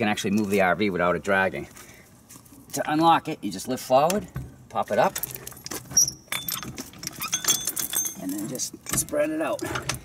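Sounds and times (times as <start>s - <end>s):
hooks and cables jangling: 4.7s - 10.0s.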